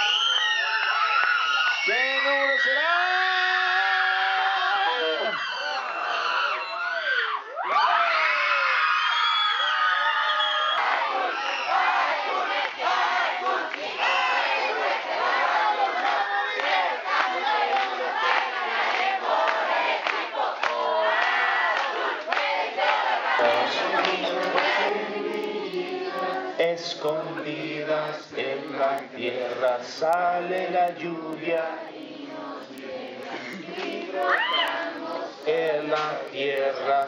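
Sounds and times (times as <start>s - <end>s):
crowd shouting and cheering: 0.0s - 37.0s
hands clapping: 12.5s - 14.0s, 16.0s - 26.3s, 32.8s - 34.8s, 35.6s - 36.7s.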